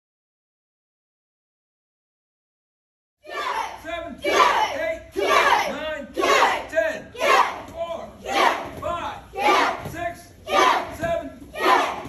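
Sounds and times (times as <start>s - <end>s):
students shouting in unison: 3.2s - 8.7s, 9.4s - 9.8s, 10.5s - 12.0s.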